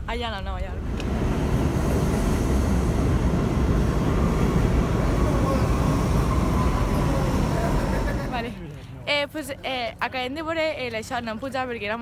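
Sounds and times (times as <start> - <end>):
subway train rumbling past: 0.6 - 8.5.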